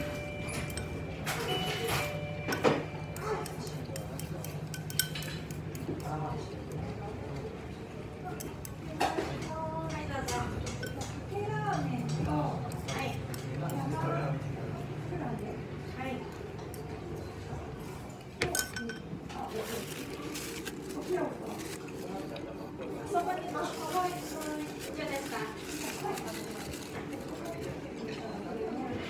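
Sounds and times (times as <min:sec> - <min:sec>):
ceramic bowl and chopsticks clinking: 0:00.1 - 0:06.2, 0:10.2 - 0:11.2, 0:18.4 - 0:20.0
chopsticks tapping a ceramic bowl: 0:02.5 - 0:06.1.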